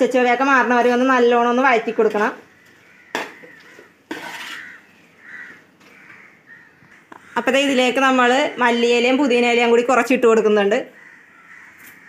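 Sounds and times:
crow cawing: 0:01.7 - 0:07.8, 0:10.8 - 0:12.0.

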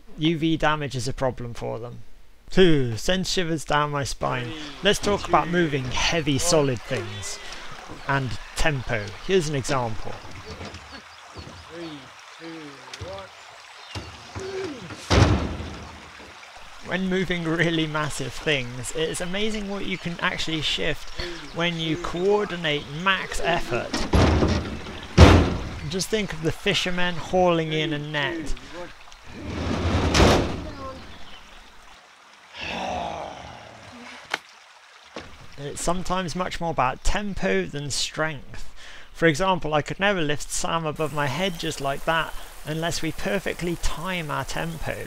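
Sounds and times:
people calling out: 0:04.4 - 0:08.9, 0:10.4 - 0:13.3, 0:14.3 - 0:15.2, 0:30.6 - 0:31.1, 0:32.6 - 0:34.3
heavy wooden post thud: 0:13.9 - 0:16.4, 0:23.9 - 0:25.9, 0:29.5 - 0:30.7
loud knock: 0:14.3 - 0:15.9, 0:24.1 - 0:25.8
wooden post scraping on metal ramp: 0:29.4 - 0:30.6.

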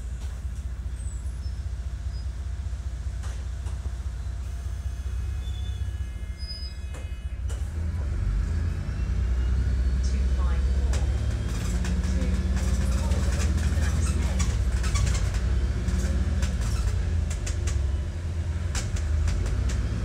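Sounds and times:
deep diesel bus rumble: 0:00.0 - 0:20.0.

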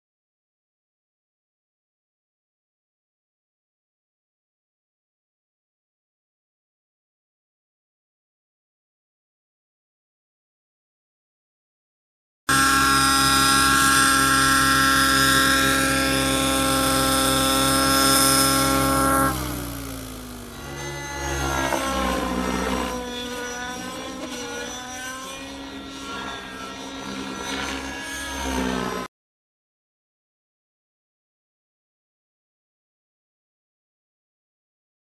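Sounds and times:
model helicopter engine and rotor: 0:12.5 - 0:29.1.

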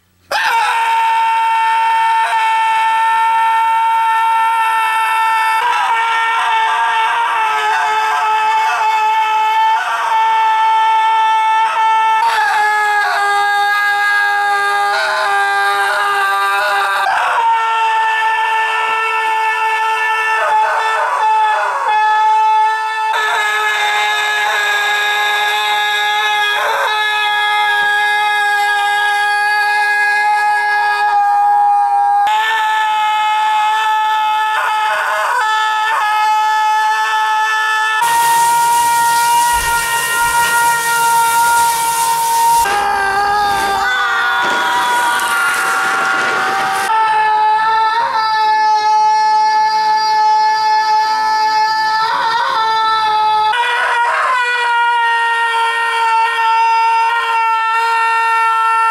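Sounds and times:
man screaming: 0:00.3 - 0:51.9.

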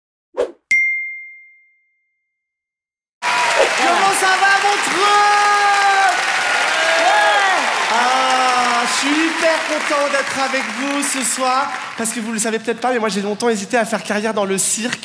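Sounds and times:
crowd whooping: 0:03.2 - 0:12.0
audience applause and cheering: 0:03.2 - 0:12.9.

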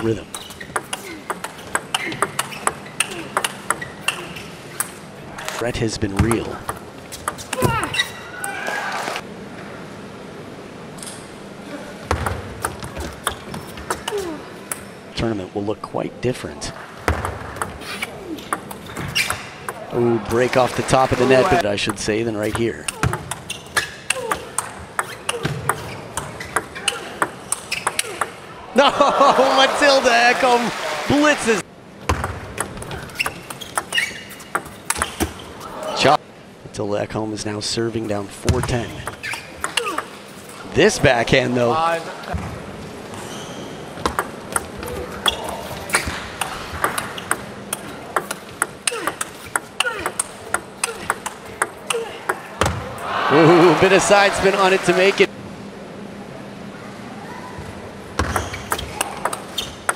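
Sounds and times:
table tennis ball clicking: 0:46.4 - 0:52.4.

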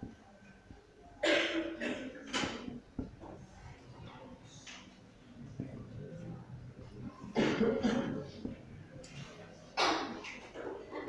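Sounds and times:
person coughing: 0:01.2 - 0:02.4, 0:07.3 - 0:08.4.

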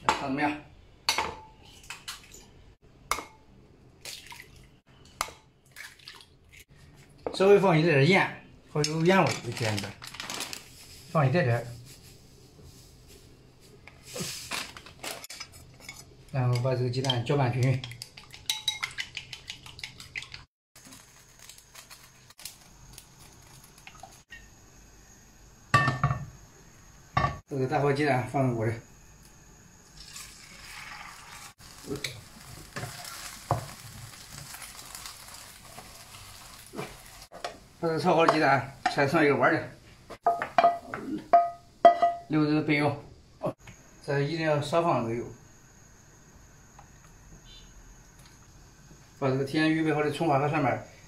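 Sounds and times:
chopsticks beating eggs in bowl: 0:15.8 - 0:20.5
faint steady hiss: 0:20.8 - 0:51.0.

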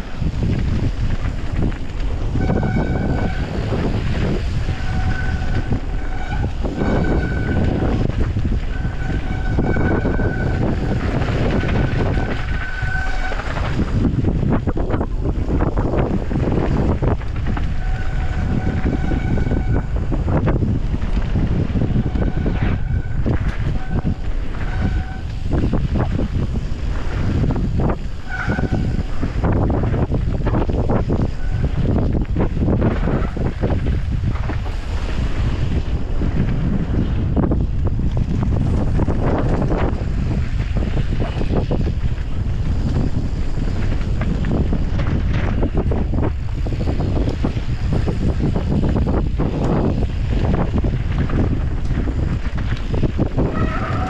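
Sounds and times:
tyres crunching on gravel: 0:00.0 - 0:18.8
bike rattling over stones: 0:00.0 - 0:54.0
wind on microphone: 0:00.0 - 0:54.0.

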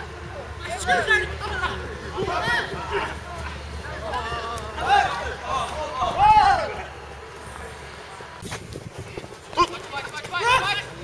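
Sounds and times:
men shouting and calling out: 0:00.0 - 0:07.5, 0:09.5 - 0:11.0.

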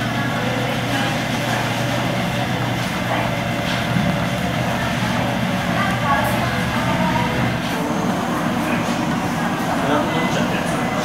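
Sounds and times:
machinery humming: 0:00.0 - 0:11.0.

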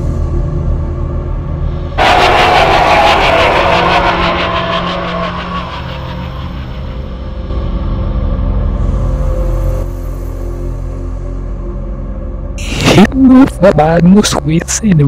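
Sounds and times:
low rumbling drone: 0:00.0 - 0:13.9
pulsing ringing swell: 0:02.0 - 0:08.2.

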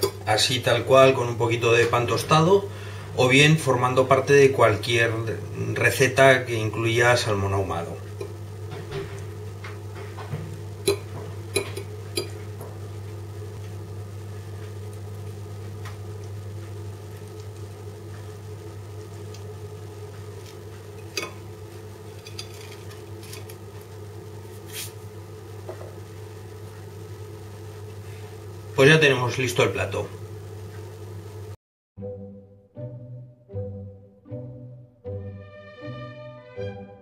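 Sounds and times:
steady low hum: 0:00.0 - 0:31.6.

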